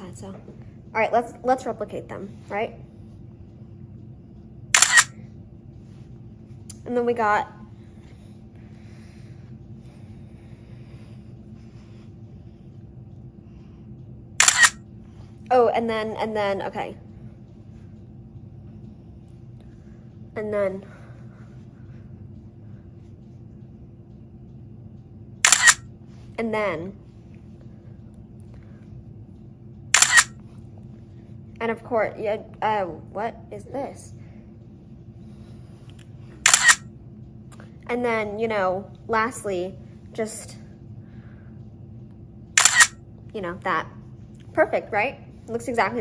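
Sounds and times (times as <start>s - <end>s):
camera shutter click: 4.8s - 5.1s, 14.4s - 14.8s, 25.4s - 25.8s, 30.0s - 30.3s, 36.4s - 36.8s, 42.6s - 42.9s.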